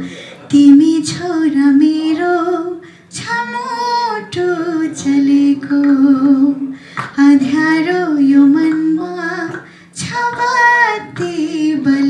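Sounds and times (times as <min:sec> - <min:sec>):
woman singing unaccompanied: 0:00.5 - 0:12.0.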